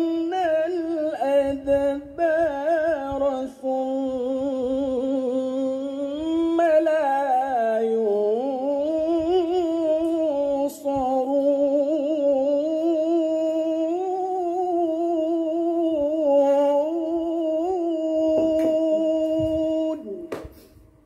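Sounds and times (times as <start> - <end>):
man reciting melodically: 0.0 - 20.4.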